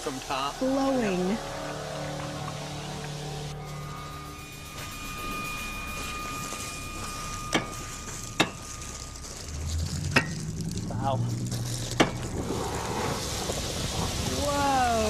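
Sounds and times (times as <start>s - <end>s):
steady rushing background: 0.0s - 14.3s
lava crust cracking: 7.8s - 15.0s.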